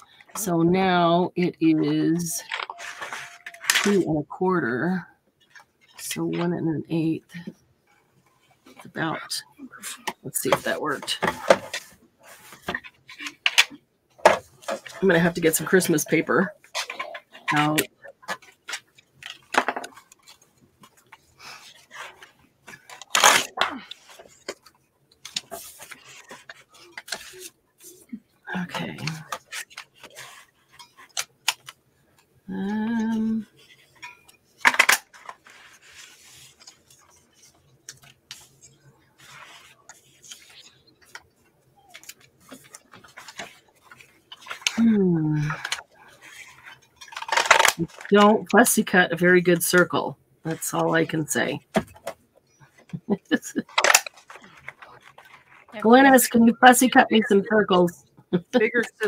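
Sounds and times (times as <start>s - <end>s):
paper rustling: 2.4s - 4.0s, 9.7s - 28.2s, 29.0s - 31.8s, 32.9s - 48.2s, 53.6s - 56.2s.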